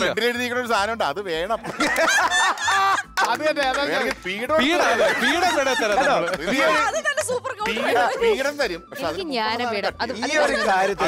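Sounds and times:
people talking and laughing: 0.0 - 11.0.

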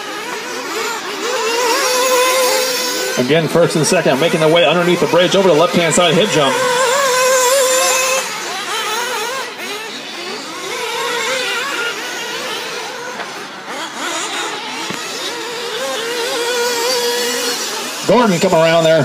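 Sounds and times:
small engines revving high: 0.0 - 19.0.

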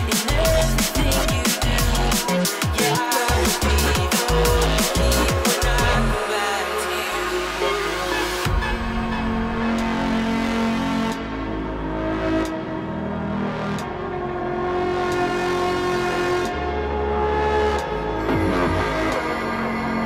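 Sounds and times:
held bass and synth notes: 0.0 - 20.0.

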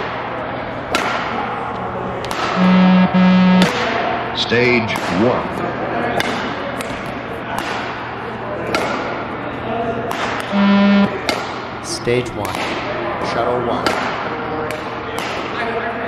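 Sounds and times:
electronic beep: 2.6 - 3.7, 10.5 - 11.1.

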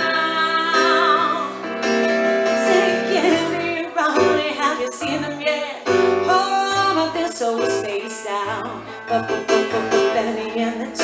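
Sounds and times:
woman singing into a microphone: 0.0 - 1.7, 2.5 - 11.0
keyboard chords and bass notes: 0.0 - 11.0.

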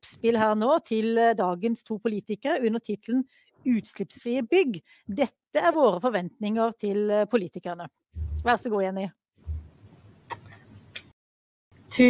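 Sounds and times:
faint background hiss: 8.2 - 8.6.

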